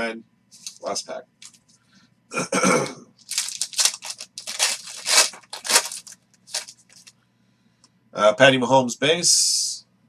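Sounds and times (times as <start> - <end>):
foil wrapper tearing and crinkling: 3.2 - 7.1.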